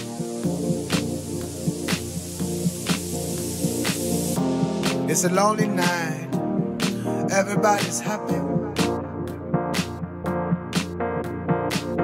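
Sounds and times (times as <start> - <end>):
steady hiss: 0.0 - 6.2
electronic music: 0.0 - 12.0.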